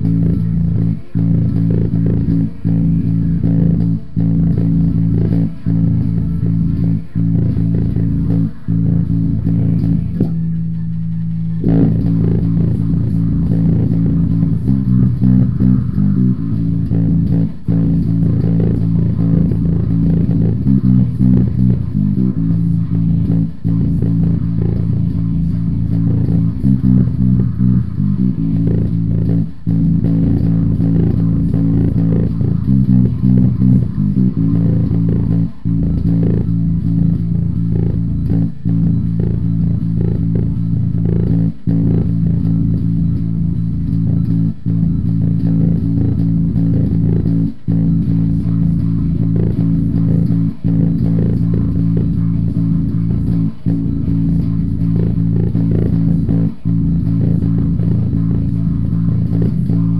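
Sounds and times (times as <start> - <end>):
electric bass riff: 0.0 - 59.9.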